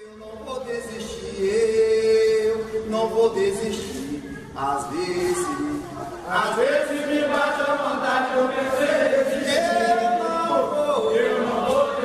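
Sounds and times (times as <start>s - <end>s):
voices chanting in held notes: 4.8s - 12.0s.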